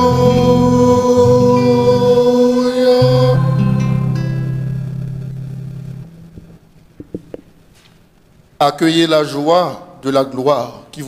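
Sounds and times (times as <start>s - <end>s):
people singing a hymn: 0.0s - 4.5s
classical guitar: 0.0s - 7.4s.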